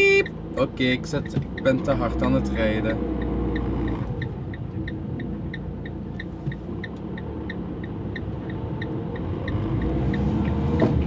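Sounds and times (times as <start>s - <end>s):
road noise: 0.0s - 11.0s
turn signal ticking: 0.0s - 11.0s
van engine: 0.0s - 11.0s.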